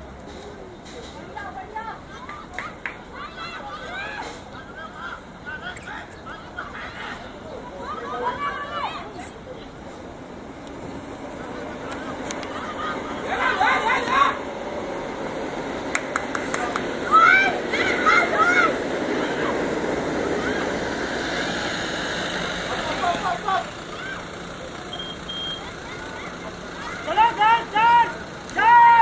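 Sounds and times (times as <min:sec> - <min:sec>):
crowd murmur: 0:00.0 - 0:29.0.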